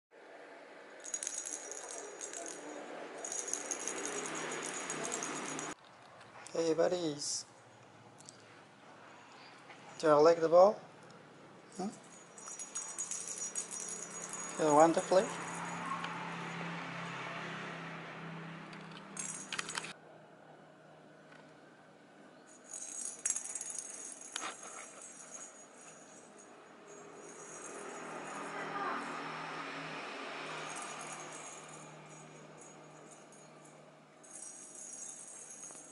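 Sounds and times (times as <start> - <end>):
ball with bell rattling: 1.0 - 5.8, 11.6 - 17.2, 18.8 - 20.0, 22.5 - 29.2, 30.4 - 35.9.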